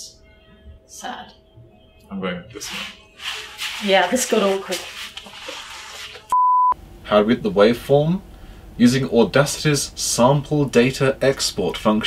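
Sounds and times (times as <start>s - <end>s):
electronic beep: 6.3s - 6.8s.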